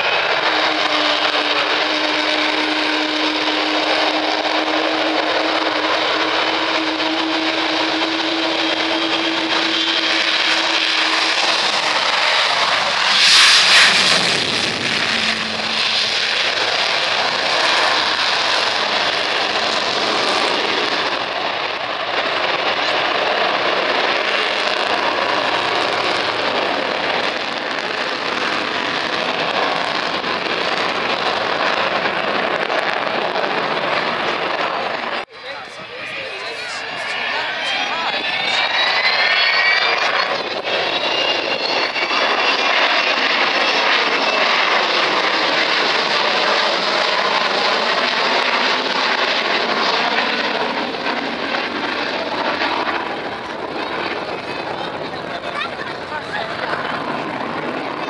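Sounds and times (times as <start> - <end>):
jet engine roar: 0.0 - 58.0.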